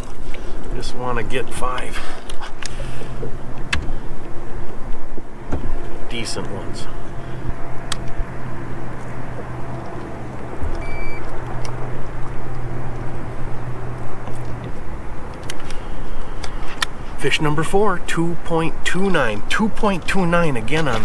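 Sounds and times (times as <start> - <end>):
water noise: 0.0 - 21.0
wind: 0.0 - 21.0
short high beep: 10.8 - 11.2.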